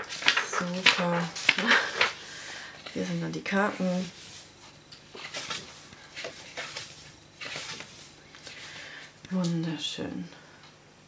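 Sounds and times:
paper pages rustling: 0.0 - 9.2.

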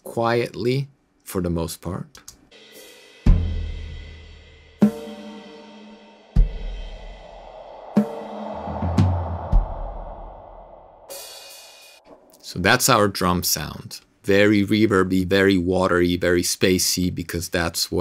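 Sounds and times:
cymbal wash: 2.6 - 10.3, 11.1 - 12.6
tom drum hits: 6.4 - 7.2.

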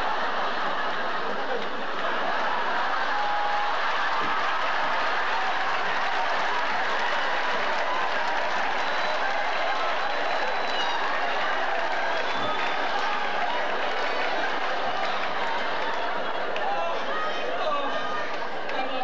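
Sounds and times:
large audience applauding: 0.0 - 19.0.

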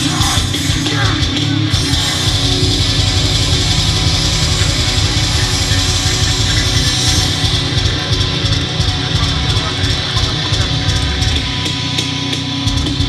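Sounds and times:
metal band playing: 0.0 - 13.0.

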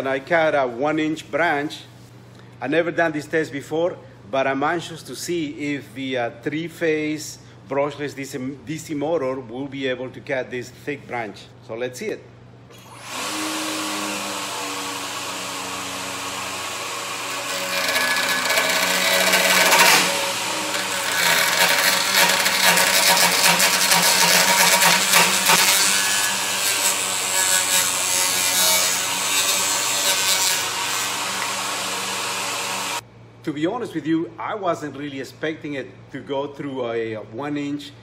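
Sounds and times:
electric motor humming: 12.7 - 33.0.

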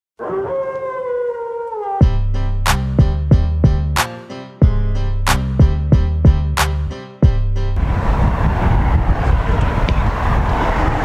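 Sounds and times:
wolf howling: 0.2 - 2.1.

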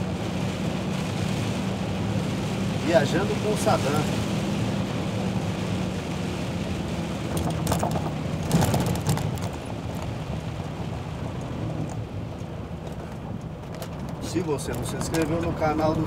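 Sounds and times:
rain on windshield: 0.0 - 16.0.

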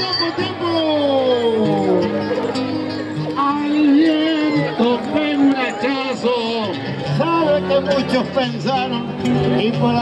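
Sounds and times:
man singing over public address: 0.0 - 2.2, 3.2 - 10.0.

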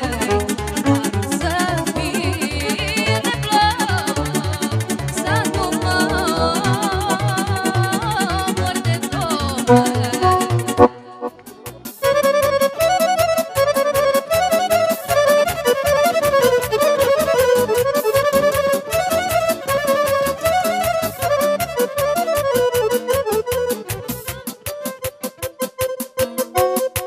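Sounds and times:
accordion melody: 0.0 - 27.0
band rhythm: 4.6 - 27.0.

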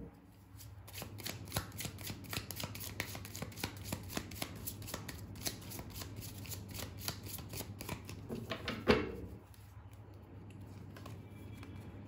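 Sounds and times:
cards shuffling: 0.6 - 8.3.

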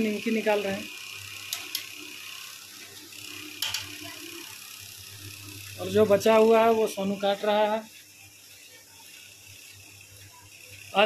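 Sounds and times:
food sizzling in hot oil: 0.0 - 11.0.

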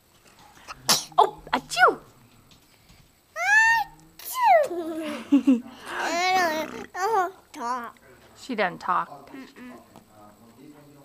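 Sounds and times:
small child squealing: 3.4 - 4.6.

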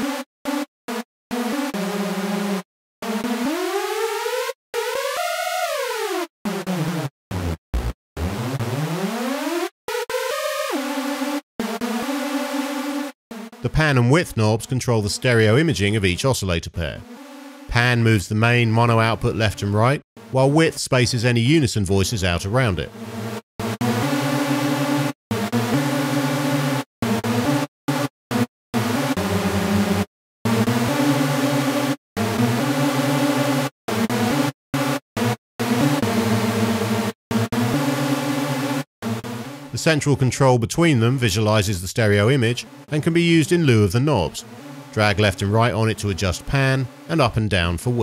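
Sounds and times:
synthesizer notes and chords: 0.0 - 48.0
synthesizer sawtooth notes gliding: 44.4 - 47.1.

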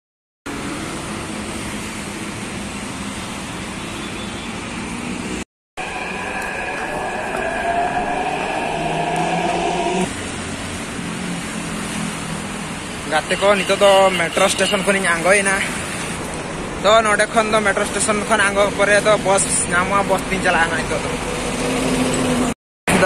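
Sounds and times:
street traffic: 0.5 - 23.0
train whine rising in pitch: 5.8 - 10.3.

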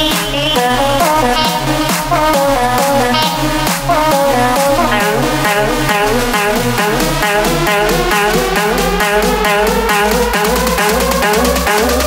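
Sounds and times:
deep bass beat: 0.0 - 12.0
electronic dance music: 0.0 - 12.0
high sliding synth melody: 0.0 - 12.0
vocal sample: 0.0 - 12.0.

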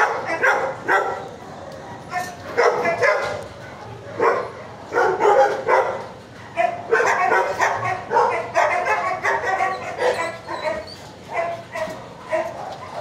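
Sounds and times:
dogs barking and yipping: 0.0 - 13.0.

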